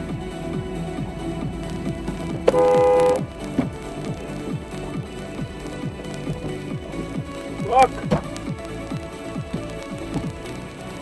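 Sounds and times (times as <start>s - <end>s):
electronic dance music: 0.0s - 11.0s
car horn blast: 2.4s - 3.6s.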